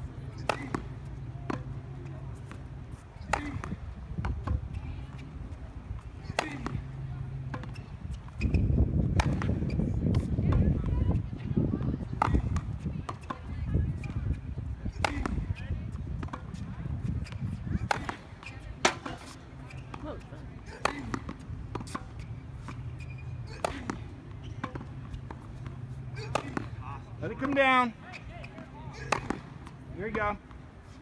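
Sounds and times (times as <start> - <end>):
tennis ball bouncing on hard court: 0.3 - 5.3, 6.0 - 14.3, 14.9 - 30.6
tennis ball struck by rackets: 0.3 - 5.3, 6.0 - 10.9, 11.8 - 14.3, 14.9 - 15.6, 16.2 - 16.6, 17.2 - 30.5.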